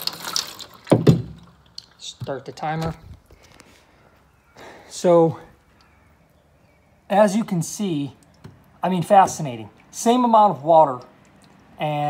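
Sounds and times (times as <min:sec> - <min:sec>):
water splashing onto soil: 0:00.0 - 0:03.0
loud knocks: 0:00.9 - 0:01.4.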